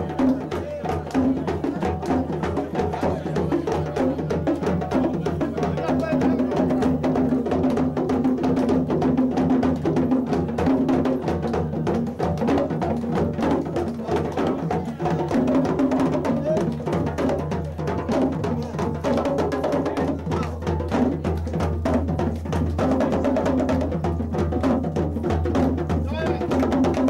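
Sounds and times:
djembe drumming: 0:00.0 - 0:27.0.

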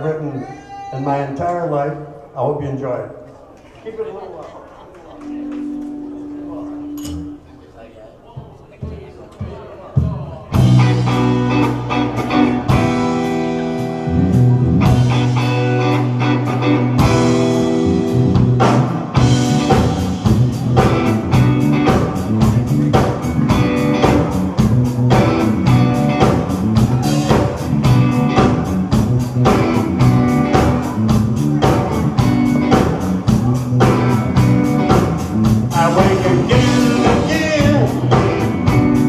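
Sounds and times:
electric guitar chords: 0:05.3 - 0:07.5, 0:10.5 - 0:39.0
drums playing fast dance beat: 0:08.4 - 0:11.6, 0:17.0 - 0:39.0
bass guitar: 0:10.5 - 0:39.0.

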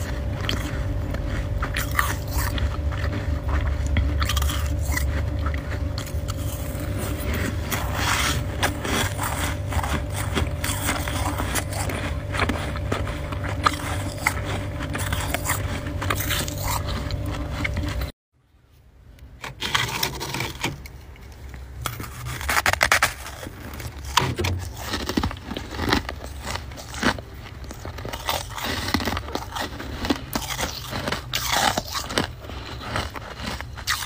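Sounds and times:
chewing and crunching frost: 0:00.0 - 0:18.2, 0:19.2 - 0:34.0
steady low hum: 0:00.0 - 0:19.4, 0:20.3 - 0:34.0.

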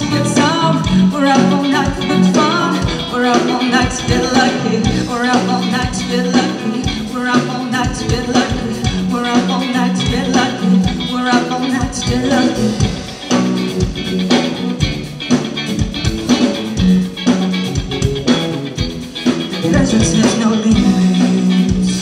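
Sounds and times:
bass guitar: 0:00.0 - 0:22.0
electric guitars: 0:00.0 - 0:22.0
drum beat: 0:07.9 - 0:22.0.

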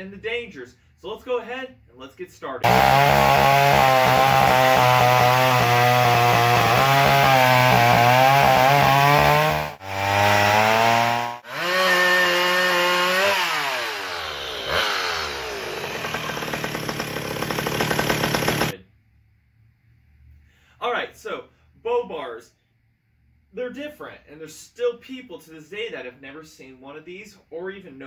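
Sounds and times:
chainsaw cutting logs: 0:02.6 - 0:18.8.

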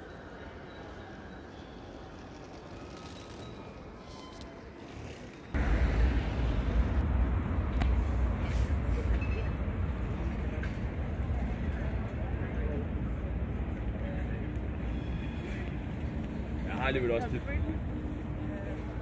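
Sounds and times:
hubbub of people: 0:08.4 - 0:19.0.

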